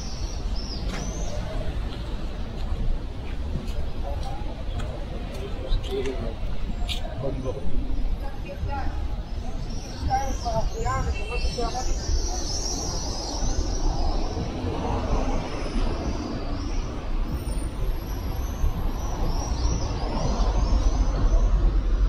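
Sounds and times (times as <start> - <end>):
steady traffic rumble: 0.0 - 22.0.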